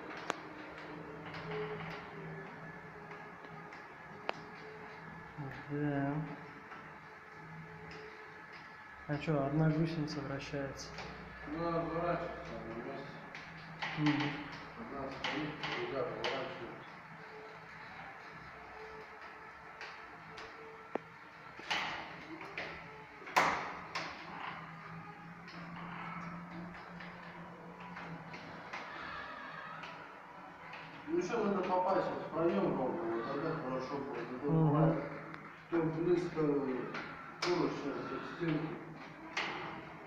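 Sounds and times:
electric motors humming: 0:00.0 - 0:40.0.

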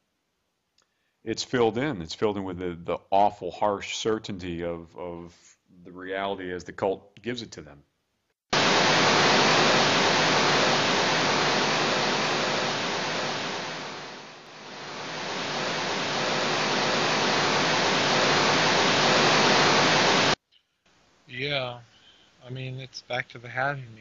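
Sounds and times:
loud static-like hiss: 0:08.5 - 0:24.0.

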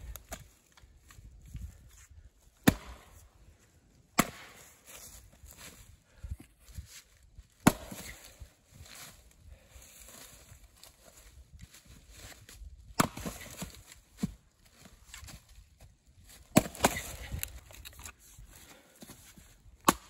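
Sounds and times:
axe chopping wood: 0:02.6 - 0:03.2, 0:04.2 - 0:04.8, 0:07.6 - 0:08.3, 0:13.0 - 0:14.3, 0:16.5 - 0:17.5, 0:19.8 - 0:20.0.

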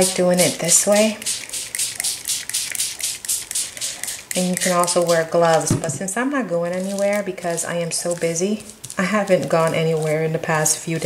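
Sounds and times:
spray bottle spritzing: 0:00.0 - 0:05.9, 0:06.7 - 0:10.2.

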